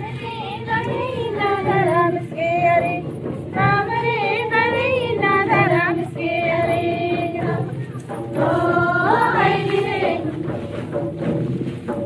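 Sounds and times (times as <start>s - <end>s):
women singing together: 0.0s - 10.8s.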